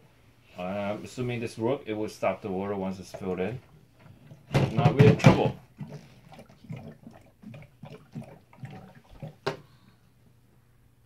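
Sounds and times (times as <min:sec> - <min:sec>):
water glugging from bottle: 0:02.9 - 0:09.8
air gulping into bottle: 0:03.0 - 0:10.0.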